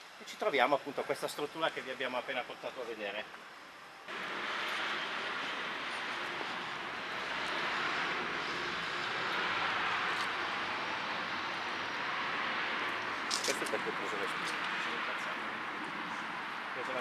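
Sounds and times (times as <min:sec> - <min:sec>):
passing road traffic: 0:04.1 - 0:17.0.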